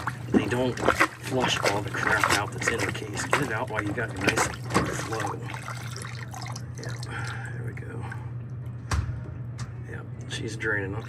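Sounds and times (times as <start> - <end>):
water splashing down a drain: 0.0 - 7.4
steady low hum: 0.0 - 11.0.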